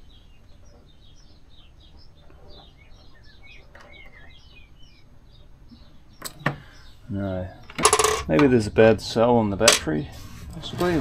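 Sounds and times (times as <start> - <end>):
small birds chirping: 0.0 - 10.7.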